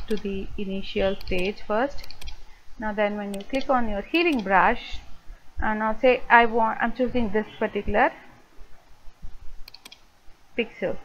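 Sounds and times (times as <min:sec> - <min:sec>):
computer mouse clicks: 0:00.0 - 0:00.3, 0:01.2 - 0:02.4, 0:03.3 - 0:03.7, 0:04.3 - 0:04.6, 0:09.6 - 0:10.0.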